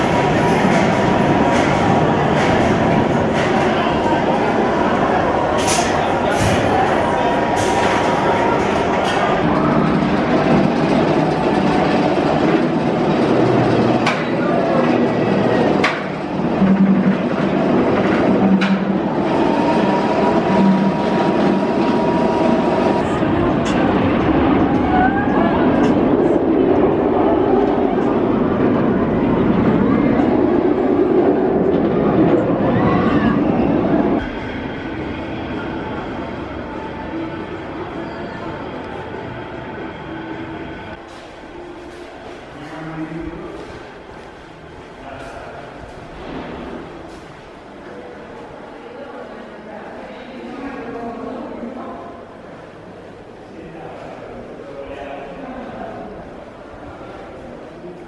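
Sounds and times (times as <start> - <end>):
people chattering: 0.0 - 58.0
roller coaster on steel track: 0.0 - 58.0.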